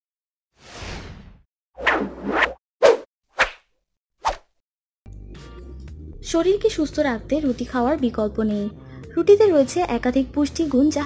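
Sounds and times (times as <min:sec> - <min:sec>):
short sharp swishes: 0:01.8 - 0:04.6.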